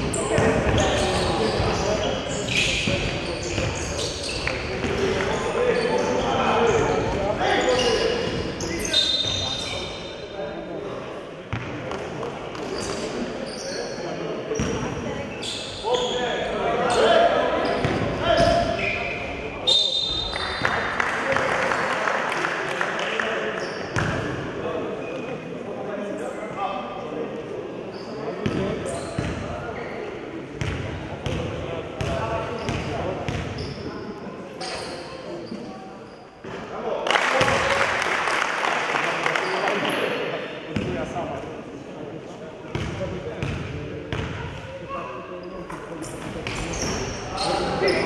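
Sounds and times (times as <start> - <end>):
indistinct chatter in echoing room: 0.0 - 48.0.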